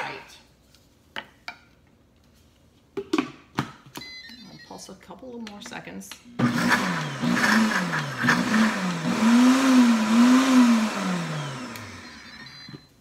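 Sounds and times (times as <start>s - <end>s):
blender motor pulsing: 6.4s - 12.8s.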